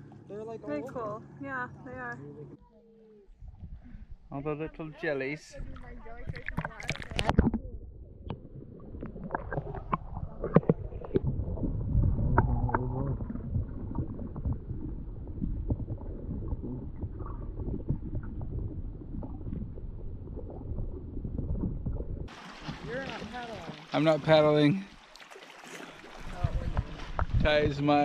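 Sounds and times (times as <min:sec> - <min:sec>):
muffled water sloshing: 0:04.9 - 0:28.0.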